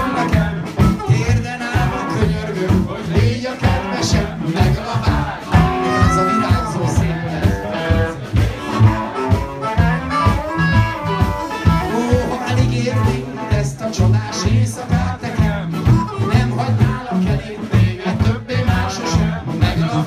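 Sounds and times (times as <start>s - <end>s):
blues band playing: 0.0s - 20.0s
harmonica: 5.6s - 7.0s, 7.9s - 13.3s.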